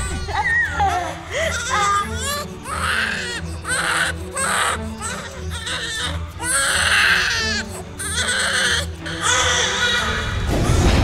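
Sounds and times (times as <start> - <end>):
newborn baby crying: 0.0 - 10.8.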